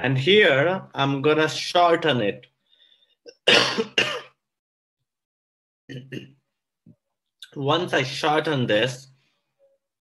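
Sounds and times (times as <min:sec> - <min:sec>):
man clearing his throat: 0:03.3 - 0:04.4.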